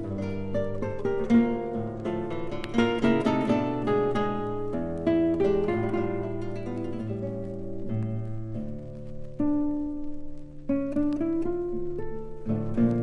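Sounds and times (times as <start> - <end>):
classical guitars playing: 0.0 - 13.0.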